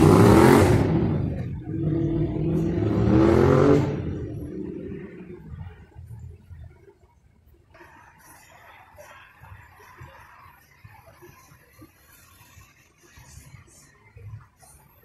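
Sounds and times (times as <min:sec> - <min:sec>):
vehicles driving past: 0:00.0 - 0:06.4.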